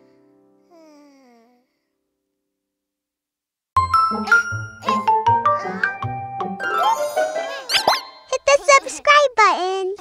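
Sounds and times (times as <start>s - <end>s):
children's music: 3.8s - 9.3s
cartoon character voices: 8.3s - 10.0s.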